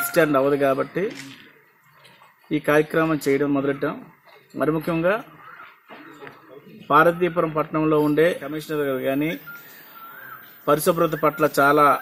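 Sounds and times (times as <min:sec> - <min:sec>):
man speaking into a microphone: 0:00.0 - 0:01.4, 0:02.5 - 0:05.4, 0:06.5 - 0:09.5, 0:10.6 - 0:12.0
faint high beep-like tone: 0:08.6 - 0:12.0.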